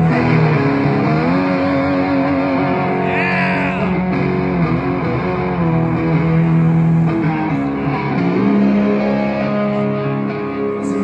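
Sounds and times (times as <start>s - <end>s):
rock band on electric guitars: 0.0s - 11.0s.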